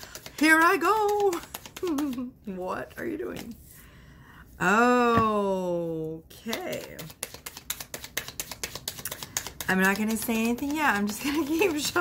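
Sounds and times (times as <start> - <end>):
cards being shuffled by hand: 0.0 - 3.7, 6.4 - 12.0.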